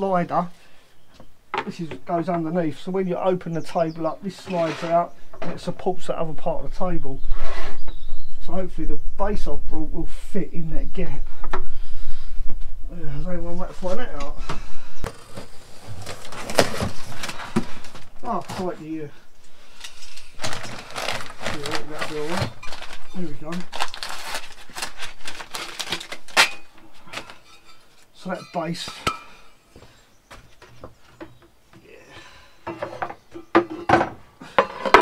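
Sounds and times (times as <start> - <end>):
cardboard scraping and rustling: 4.4 - 5.1, 15.0 - 18.9, 20.0 - 29.1
blade slitting packing tape: 20.5 - 26.7
faint knocks and rustles: 27.0 - 35.0.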